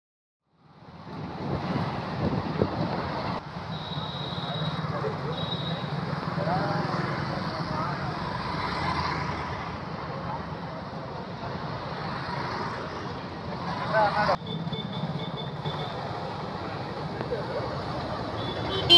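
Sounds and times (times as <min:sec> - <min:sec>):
road noise: 0:00.4 - 0:18.9
motorcycle engines: 0:00.5 - 0:18.9.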